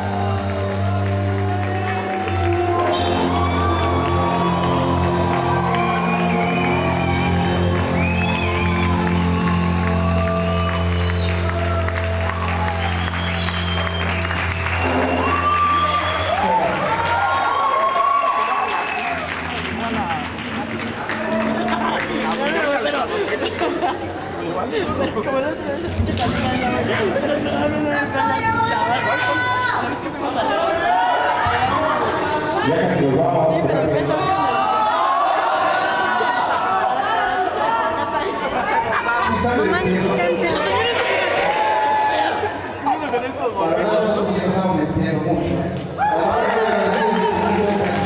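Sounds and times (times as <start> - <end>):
overlapping chatter: 0.0 - 48.0.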